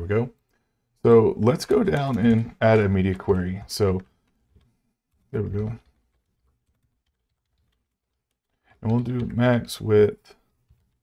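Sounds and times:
faint keyboard typing: 1.4s - 11.0s.

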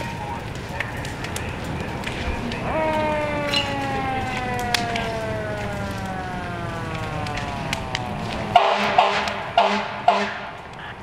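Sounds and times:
sharp cracks: 0.0s - 11.0s
siren winding down: 2.6s - 9.3s.

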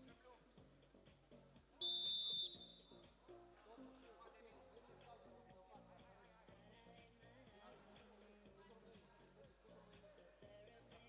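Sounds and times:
quiet background music: 0.0s - 11.0s
referee's whistle blast: 1.8s - 3.1s.

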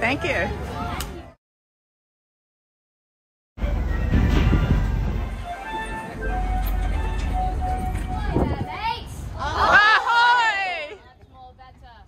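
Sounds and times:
simple melody of short notes: 5.3s - 8.4s.

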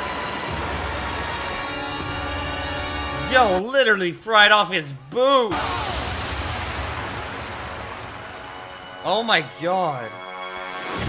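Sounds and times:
rush of water: 0.0s - 2.2s, 5.5s - 9.0s.

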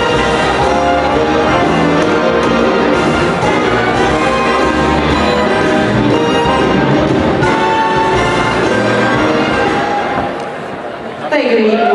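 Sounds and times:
orchestral dance music: 0.0s - 11.7s.

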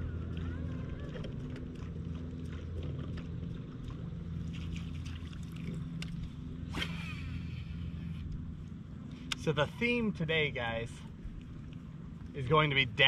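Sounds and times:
electric trolling motor hum: 0.0s - 13.0s.

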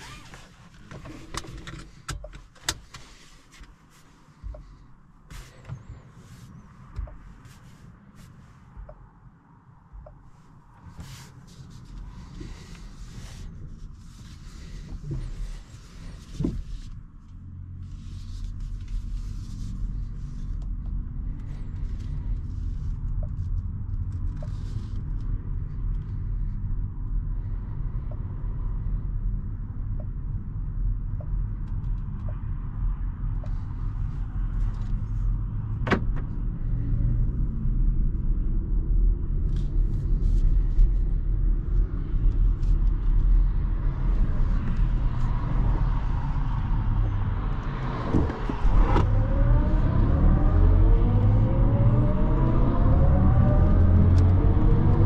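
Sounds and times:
road and tyre rumble in car: 0.0s - 55.0s.

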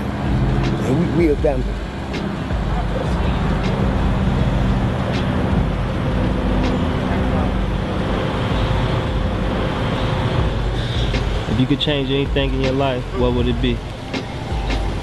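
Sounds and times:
road traffic hum: 0.0s - 15.0s.

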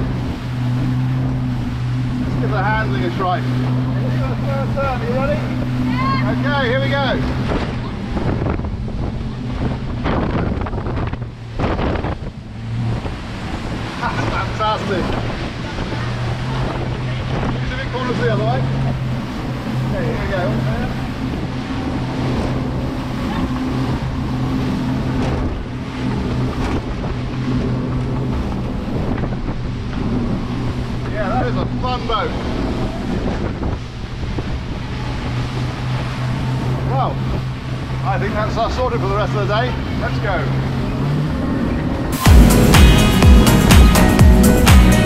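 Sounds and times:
outboard engines humming: 0.0s - 45.0s
water rushing from hull and wake: 0.0s - 45.0s
wind buffeting microphone: 0.0s - 45.0s.

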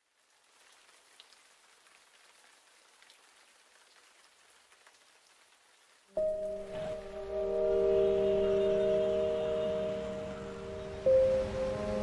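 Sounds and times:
raindrops ticking: 0.0s - 7.4s
faint steady rain: 0.0s - 12.0s.

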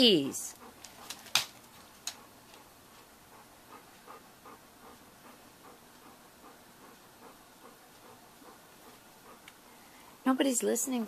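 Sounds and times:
dog panting softly: 0.0s - 10.3s.

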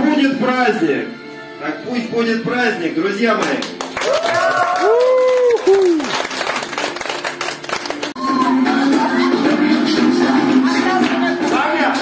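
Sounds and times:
audience clapping: 3.4s - 8.6s, 11.0s - 11.3s
audience cheering: 4.0s - 6.1s.

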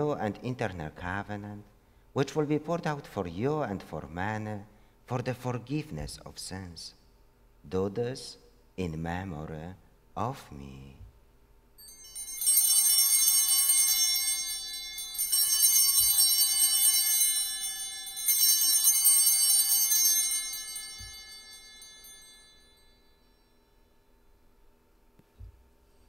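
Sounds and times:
altar bells jingling: 11.8s - 23.9s.

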